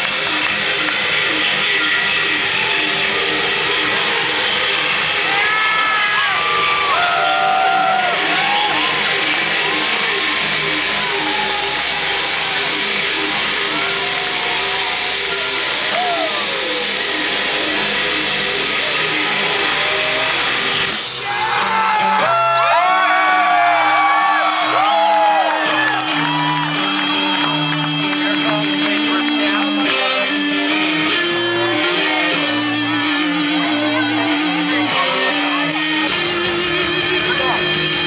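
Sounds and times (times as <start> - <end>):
bending lead guitar notes: 0.0 - 38.0
distorted electric guitar chords: 0.0 - 38.0
drums: 0.0 - 38.0.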